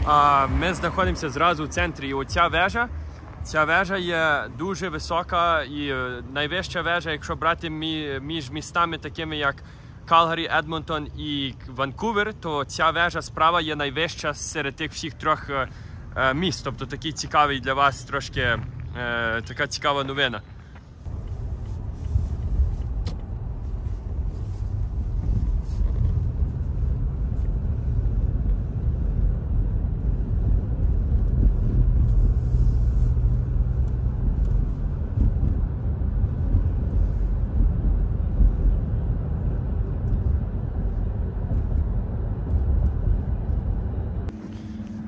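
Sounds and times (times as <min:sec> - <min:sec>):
car road and engine rumble: 0:00.0 - 0:45.0.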